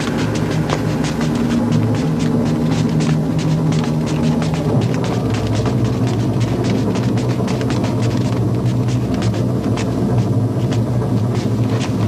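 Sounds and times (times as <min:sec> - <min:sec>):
irregular clicks: 0:00.0 - 0:12.0.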